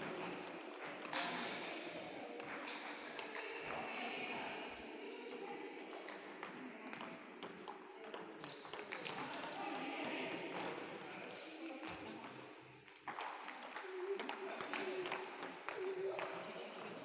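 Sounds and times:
table tennis balls bouncing: 0.0 - 1.7, 2.4 - 3.8, 5.3 - 11.1, 11.8 - 17.0.

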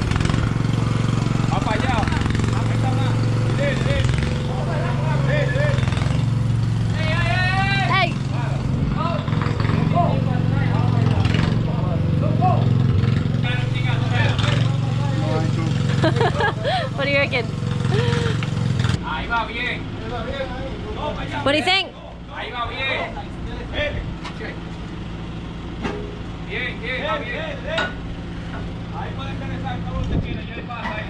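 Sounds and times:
tractor engine running: 0.0 - 31.0
people talking: 1.5 - 5.8, 13.4 - 18.3, 26.5 - 28.0, 28.9 - 31.0.

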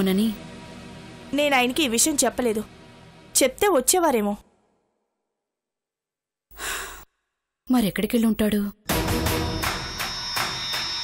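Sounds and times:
woman sighing: 6.5 - 7.1.

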